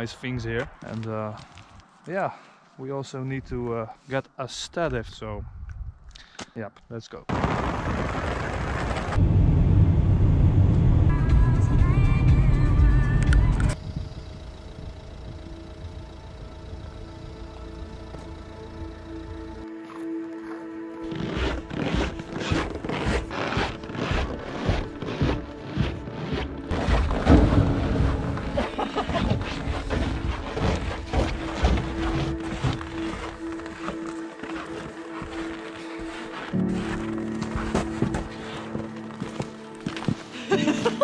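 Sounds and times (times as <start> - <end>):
car driving rumble: 9.0 - 19.6, 26.6 - 33.4
background music: 11.1 - 13.8, 14.4 - 41.0.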